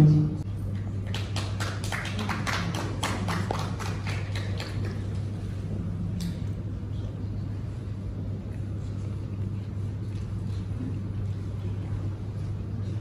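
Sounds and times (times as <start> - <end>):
steady low hum: 0.0 - 13.0
people clapping: 0.7 - 5.4.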